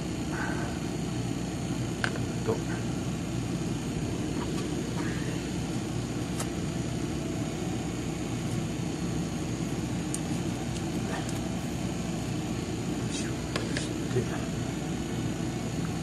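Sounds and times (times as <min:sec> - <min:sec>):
compressor humming: 0:00.0 - 0:16.0.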